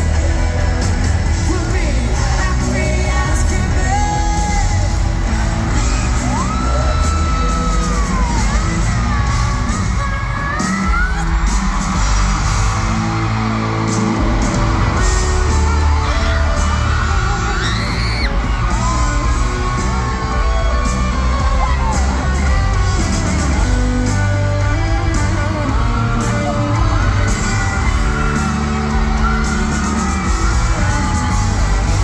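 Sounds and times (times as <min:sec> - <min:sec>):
audience yelling and whooping: 0:00.0 - 0:32.0
lead vocal singing: 0:00.0 - 0:32.0
live pop-rock band: 0:00.0 - 0:32.0.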